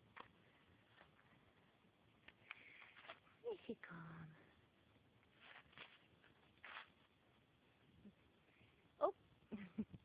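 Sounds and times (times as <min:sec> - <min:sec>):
puppy rustling dry leaves: 0:05.3 - 0:07.1.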